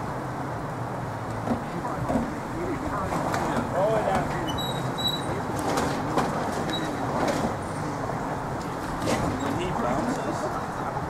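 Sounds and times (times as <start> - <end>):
faint voices: 1.4 - 11.0.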